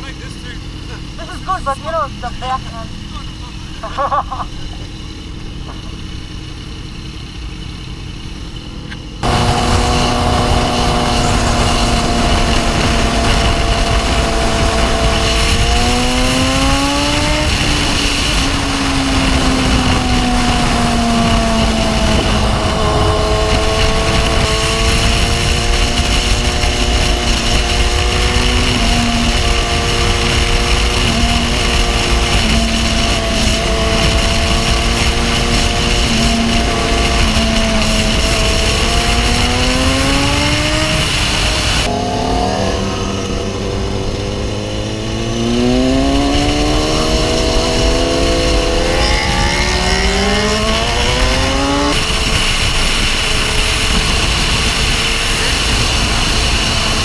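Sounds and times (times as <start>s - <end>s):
motorcycle engine accelerating: 0.0s - 57.0s
wind noise on microphone: 9.1s - 57.0s.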